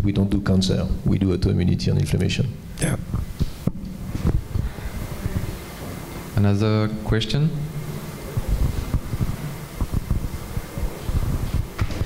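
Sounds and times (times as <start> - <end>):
microphone handling noise: 2.8 - 6.4, 7.7 - 12.0.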